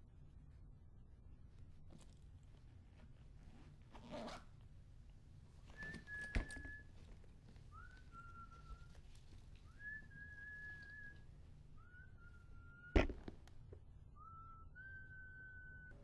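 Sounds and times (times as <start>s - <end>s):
short rustle: 5.4s - 11.6s
faint whistling notes: 5.6s - 13.3s, 14.0s - 16.0s.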